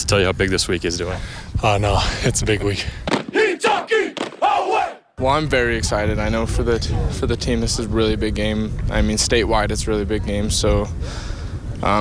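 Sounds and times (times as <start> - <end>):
group shouting war chant: 3.2 - 5.1.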